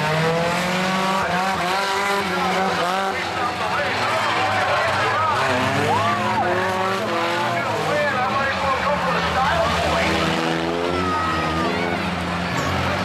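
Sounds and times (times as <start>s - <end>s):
race car engines revving: 0.0s - 13.0s.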